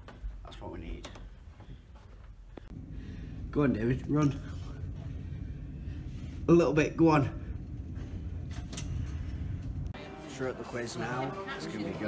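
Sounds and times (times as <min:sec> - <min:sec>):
low ship rumble: 0:02.7 - 0:10.0.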